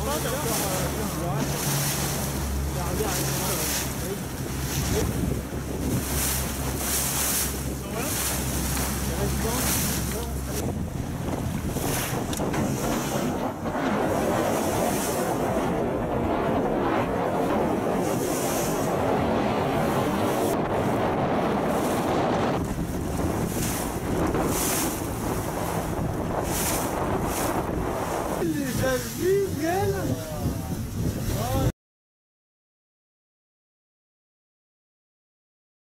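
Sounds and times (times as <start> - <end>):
boat motor humming: 0.0 - 31.7
choppy sea water rushing: 0.0 - 31.7
wind buffeting microphone: 0.0 - 31.7.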